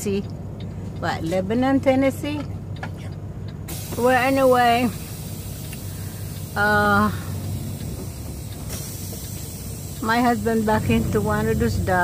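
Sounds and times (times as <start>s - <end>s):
diesel engine rumble: 0.0s - 12.0s
steady high hiss: 3.7s - 11.4s.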